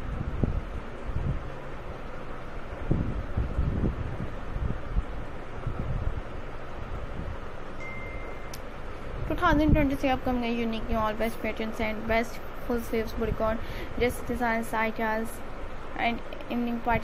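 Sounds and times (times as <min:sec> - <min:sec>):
wind buffeting microphone: 0:00.0 - 0:07.6, 0:08.8 - 0:12.2.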